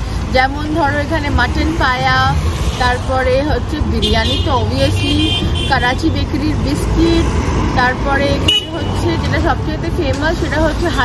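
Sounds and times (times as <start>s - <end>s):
street traffic rumble: 0.0s - 11.0s
woman talking: 0.2s - 11.0s.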